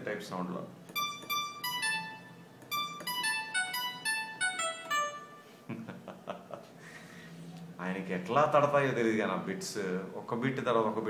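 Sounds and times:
plucked synthesizer melody: 0:01.0 - 0:05.6.

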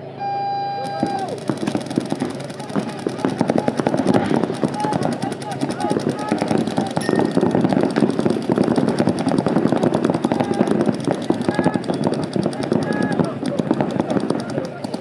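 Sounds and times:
voices calling out: 0:00.0 - 0:15.0
paintball guns firing: 0:00.8 - 0:15.0.

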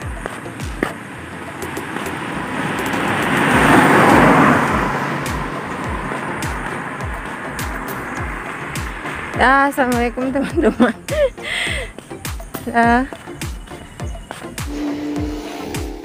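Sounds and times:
car driving past: 0:01.7 - 0:09.4.

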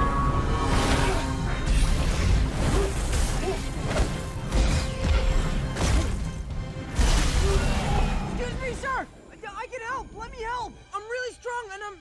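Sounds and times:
dramatic film score: 0:00.0 - 0:12.0.

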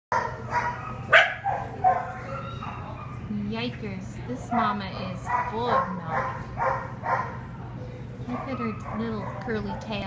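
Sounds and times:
dogs barking: 0:00.1 - 0:03.3, 0:04.3 - 0:10.0.

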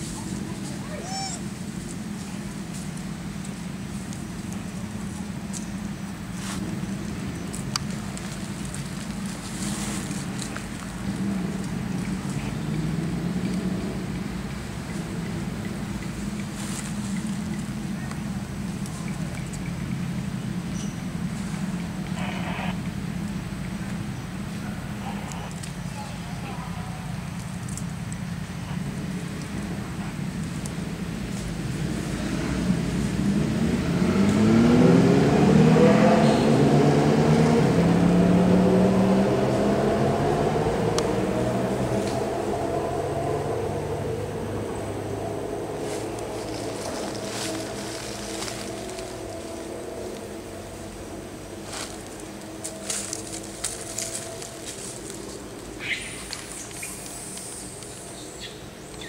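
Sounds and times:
vehicle engine passing by: 0:00.0 - 0:59.0.

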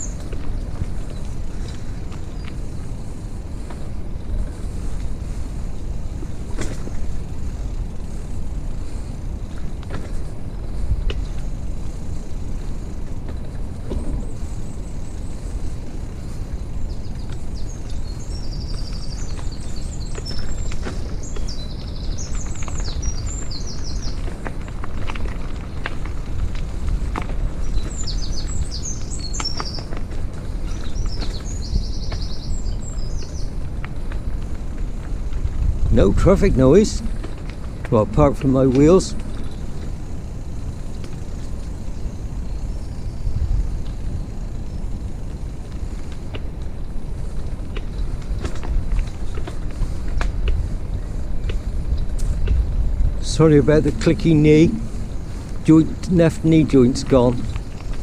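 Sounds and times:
songbirds trilling: 0:00.0 - 0:58.0
wheels rolling over rough path: 0:00.0 - 0:58.0.

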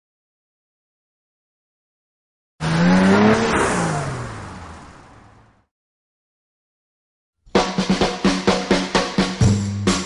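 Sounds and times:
car engine passing by: 0:02.6 - 0:05.7.

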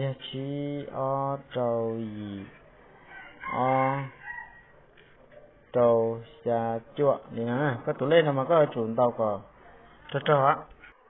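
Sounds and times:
man speaking: 0:00.0 - 0:02.8, 0:03.4 - 0:04.2, 0:05.7 - 0:10.8.

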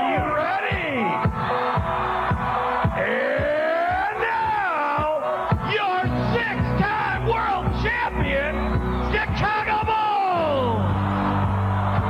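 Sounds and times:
man shouting over public address: 0:00.0 - 0:01.2, 0:03.0 - 0:10.9.

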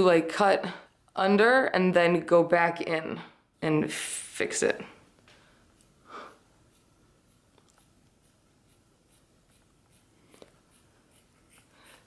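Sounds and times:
scissors snipping hair: 0:06.7 - 0:12.0.

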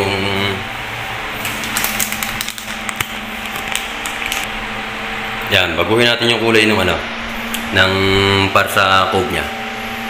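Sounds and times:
appliance humming: 0:00.0 - 0:10.0.

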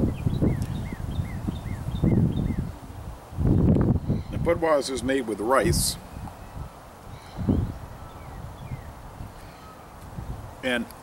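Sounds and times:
bird chirping: 0:00.0 - 0:02.8, 0:06.0 - 0:10.0
wind rumble on microphone: 0:00.0 - 0:10.6.

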